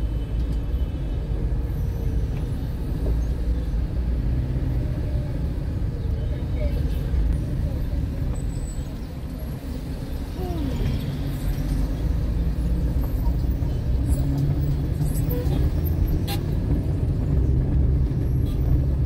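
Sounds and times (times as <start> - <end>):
faint street voices: 0.0 - 19.0
low rumble of traffic: 0.0 - 19.0.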